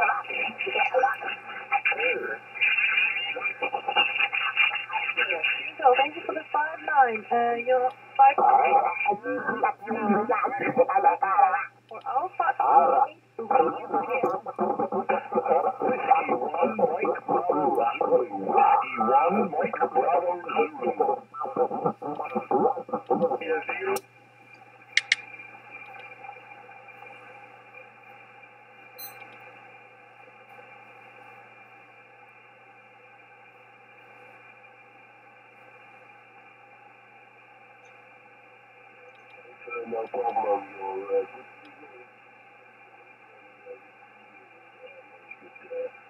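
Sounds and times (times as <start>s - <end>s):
thin radio voice: 0.0s - 6.7s, 12.4s - 24.0s
faint radio band noise: 0.0s - 46.0s.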